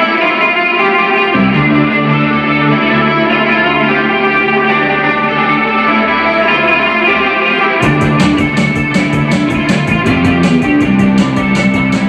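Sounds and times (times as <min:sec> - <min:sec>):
electric guitar sustained notes: 0:00.0 - 0:12.0
bass guitar: 0:01.3 - 0:07.2, 0:07.8 - 0:12.0
drums steady beat: 0:07.8 - 0:12.0.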